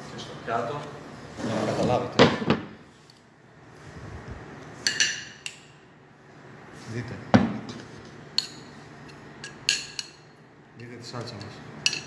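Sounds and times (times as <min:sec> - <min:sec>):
metal spoon clinking on glass: 0:09.4 - 0:10.2, 0:11.4 - 0:12.0.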